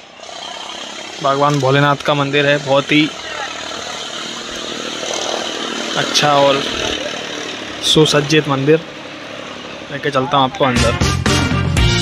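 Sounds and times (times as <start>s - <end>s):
steady background noise: 0.0s - 10.9s.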